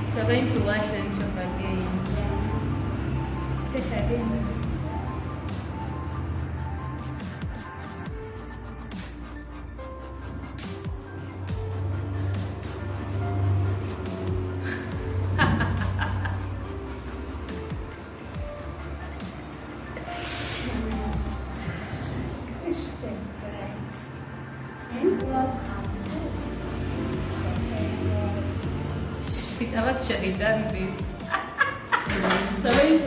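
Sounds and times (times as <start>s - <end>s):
background music with bass line: 0.0s - 22.5s, 25.2s - 33.0s.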